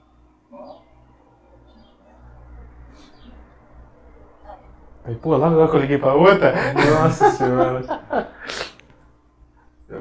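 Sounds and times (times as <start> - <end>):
man laughing: 6.4 - 8.7
man's sharp burst of breath: 8.4 - 8.8.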